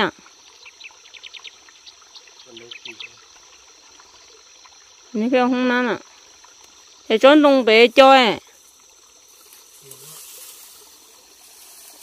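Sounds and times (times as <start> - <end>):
high insect drone: 0.0 - 12.0
bird chirping: 0.6 - 3.3.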